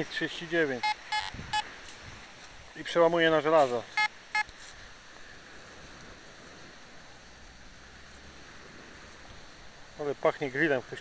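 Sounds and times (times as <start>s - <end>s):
metal detector beeps: 0.8s - 1.7s, 3.9s - 4.5s.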